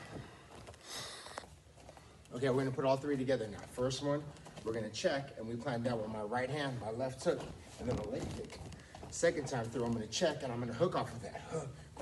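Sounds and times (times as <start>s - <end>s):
man breathing hard: 0.3s - 2.2s.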